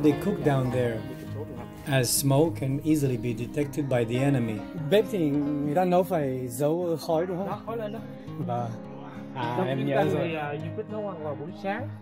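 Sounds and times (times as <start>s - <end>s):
acoustic guitar background music: 0.0s - 12.0s.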